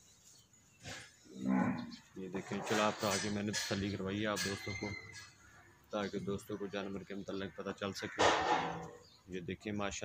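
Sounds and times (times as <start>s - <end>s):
cow mooing: 1.4s - 1.9s.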